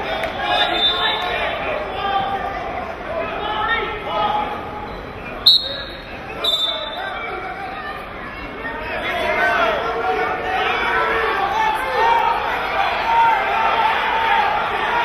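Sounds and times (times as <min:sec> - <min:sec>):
crowd and coaches' voices: 0:00.0 - 0:15.0
referee's whistle blasts: 0:00.5 - 0:01.2, 0:04.9 - 0:07.3.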